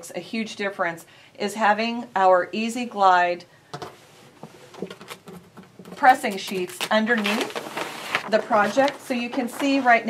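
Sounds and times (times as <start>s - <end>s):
fabric rustling: 3.9s - 10.0s.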